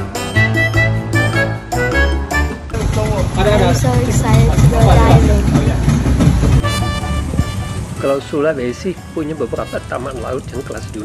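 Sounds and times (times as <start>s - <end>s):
outboard motor running: 1.8s - 8.0s, 8.7s - 11.0s.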